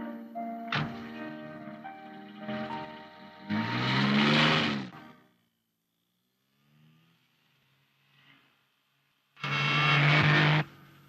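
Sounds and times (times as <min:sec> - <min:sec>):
car driving past: 0:02.4 - 0:05.2, 0:06.4 - 0:08.9.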